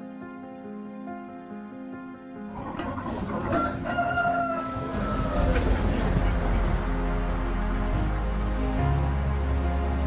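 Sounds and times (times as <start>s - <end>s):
outdoor farmyard ambience: 2.5s - 7.2s
rooster crowing: 3.3s - 6.0s.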